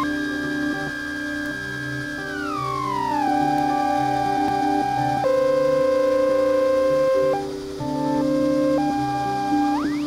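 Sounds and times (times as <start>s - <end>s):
ambient synthesizer tones: 0.0s - 10.0s.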